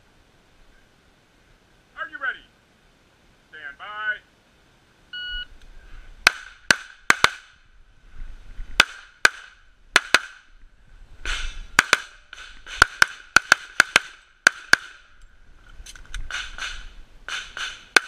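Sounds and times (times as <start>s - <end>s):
shot timer beep: 5.2s - 5.5s
rapid pistol fire: 6.2s - 7.6s, 11.3s - 15.0s, 16.3s - 18.0s.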